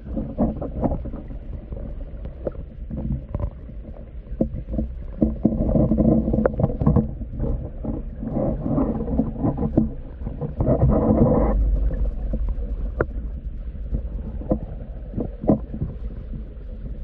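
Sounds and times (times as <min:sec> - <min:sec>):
muffled underwater stream rush: 0:00.0 - 0:17.0
underwater clicks and knocks: 0:00.0 - 0:17.0.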